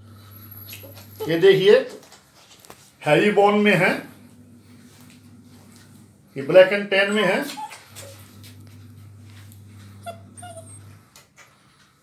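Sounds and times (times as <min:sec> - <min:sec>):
puppy whining: 0:00.2 - 0:01.6, 0:06.7 - 0:11.4.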